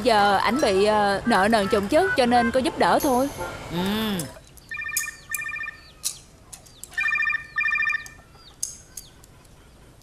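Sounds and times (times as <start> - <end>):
phone ringtone trilling: 4.7 - 6.0, 6.9 - 8.2.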